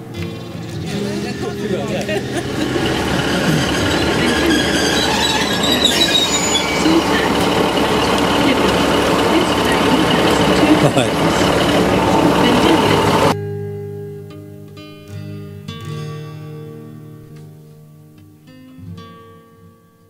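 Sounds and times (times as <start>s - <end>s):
train engines running: 0.0s - 13.4s
voices: 0.0s - 13.4s
acoustic guitar music: 0.0s - 20.0s.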